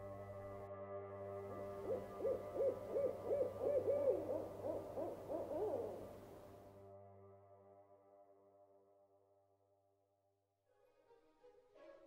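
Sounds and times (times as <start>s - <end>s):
ambient music drone: 0.0s - 9.8s
owl hooting: 1.8s - 6.5s.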